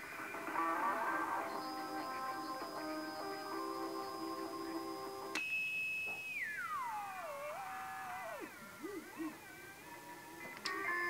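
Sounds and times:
radio music: 0.0 - 5.4, 6.4 - 11.0
radio whistle sliding down in pitch: 6.2 - 8.6.

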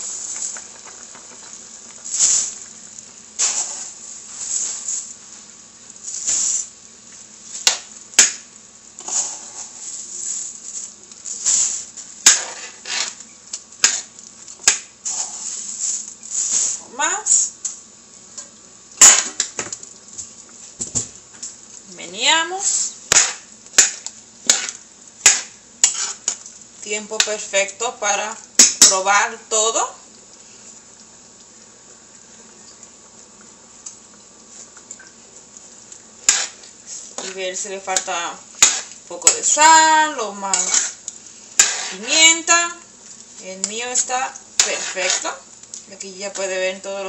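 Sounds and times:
boiling broth: 0.0 - 47.0.

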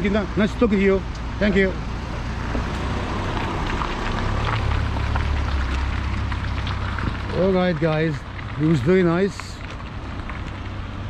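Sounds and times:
van engine pulling away: 0.0 - 11.0.

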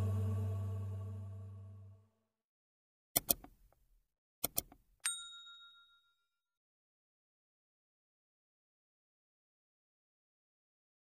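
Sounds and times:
sharp clicks: 3.2 - 3.6, 4.4 - 4.8
high bell-like ding: 5.0 - 6.4.

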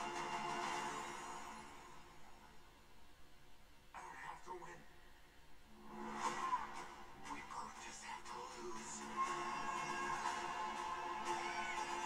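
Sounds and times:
trailer music and sound effects: 0.0 - 2.6, 5.7 - 12.0.

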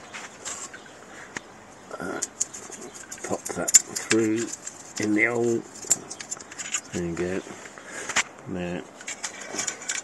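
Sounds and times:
cable handling sounds: 2.2 - 7.0, 9.0 - 10.0.

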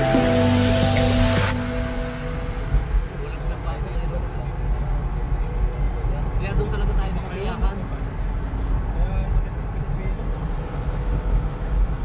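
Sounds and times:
car engine and tyre noise inside: 0.0 - 12.0.

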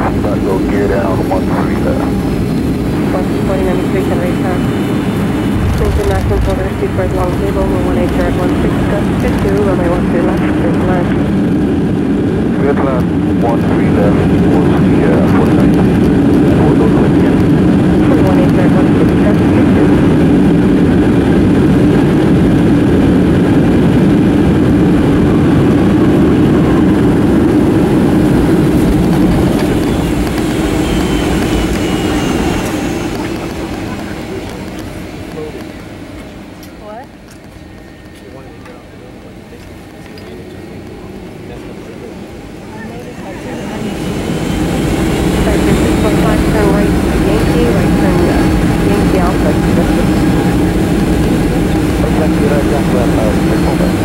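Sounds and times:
jet engine and rolling noise: 0.0 - 54.0
rising engine whine: 0.0 - 54.0.

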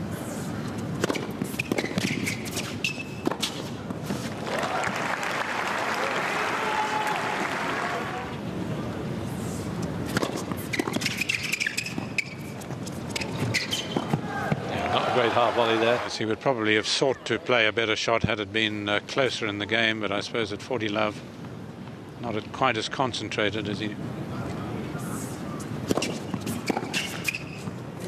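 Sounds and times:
shoe squeaks: 0.7 - 3.8, 10.1 - 14.2, 25.5 - 27.8
tennis ball bounces: 0.9 - 4.3, 10.0 - 14.6, 25.8 - 27.8
racket striking ball: 1.0 - 3.8, 10.1 - 12.0, 25.8 - 27.3
crowd noise: 3.6 - 10.2, 12.7 - 19.7.

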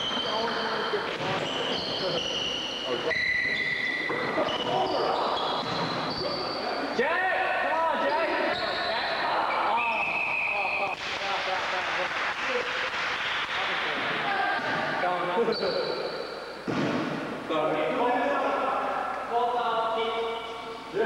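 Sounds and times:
sneakers squeaking on court: 0.0 - 6.9
players' voices echoing: 0.0 - 21.0.

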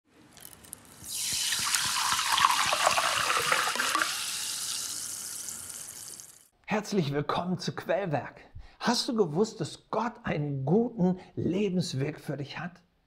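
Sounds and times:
water pouring: 0.3 - 6.5.

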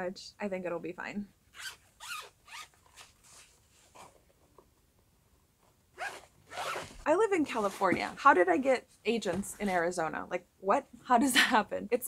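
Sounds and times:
zipper on fabric pouch: 1.6 - 4.2, 6.0 - 8.2.

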